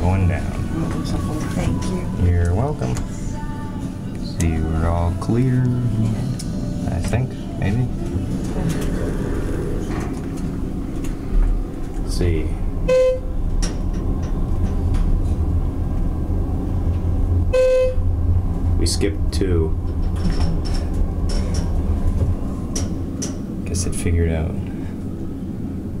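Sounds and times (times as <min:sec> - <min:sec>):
elevator low rumble: 0:00.0 - 0:26.0.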